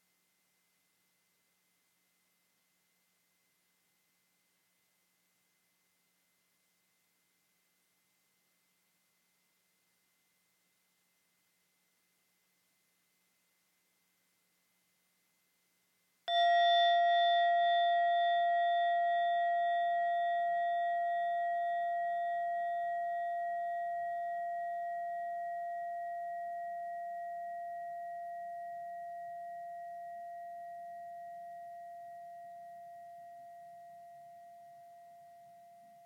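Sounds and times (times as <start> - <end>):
singing bowl ringing: 16.3 - 36.0.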